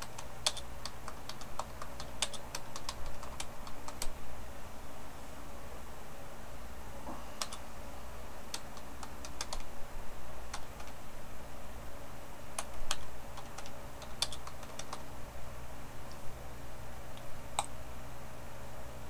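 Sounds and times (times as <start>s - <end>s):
computer keyboard typing: 0.0s - 4.2s, 7.4s - 7.6s, 8.5s - 9.7s, 10.5s - 11.0s, 12.6s - 15.1s
faint low hum: 0.0s - 19.0s.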